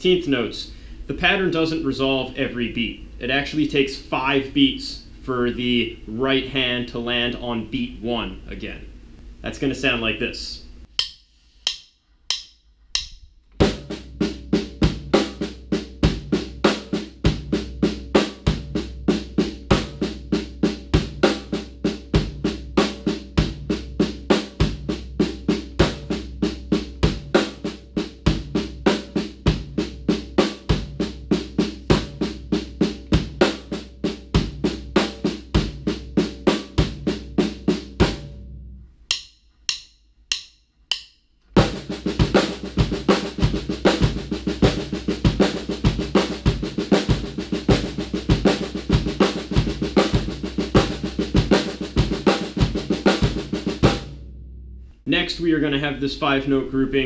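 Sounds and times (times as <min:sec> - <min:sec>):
snare drum pattern: 0:10.8 - 0:38.2, 0:39.1 - 0:54.1
drumsticks clicking together: 0:10.9 - 0:13.6, 0:39.1 - 0:41.6
bass drum beat: 0:13.0 - 0:38.6, 0:41.6 - 0:54.9.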